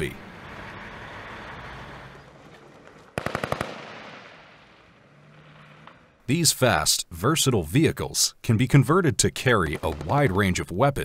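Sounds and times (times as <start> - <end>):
military vehicles engine hum: 0.0 - 3.2, 4.6 - 6.3
automatic gunfire: 3.2 - 4.4.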